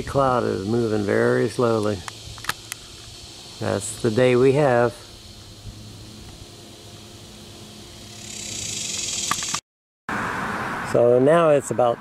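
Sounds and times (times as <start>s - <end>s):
higher hiss: 0.0s - 9.6s
low hum: 0.3s - 10.4s.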